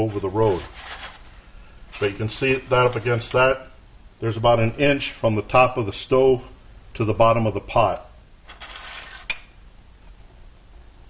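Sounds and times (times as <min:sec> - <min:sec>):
soft rustling scrape: 0:00.0 - 0:03.6, 0:08.4 - 0:09.4.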